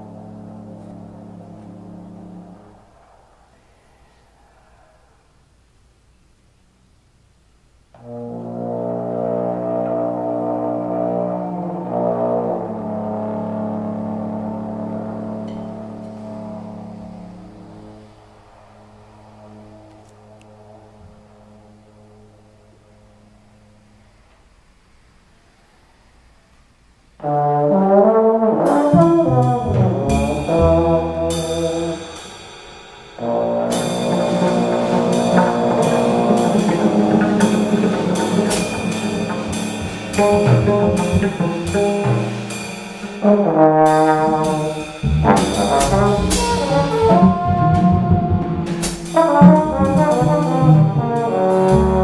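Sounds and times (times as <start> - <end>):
double bass: 0.0 - 2.7, 8.0 - 18.2, 27.2 - 32.2, 33.2 - 52.0
trombone low sustained note: 0.0 - 2.9, 8.0 - 24.1, 27.2 - 32.5, 33.1 - 52.0
drum kit cymbals: 28.8 - 52.0.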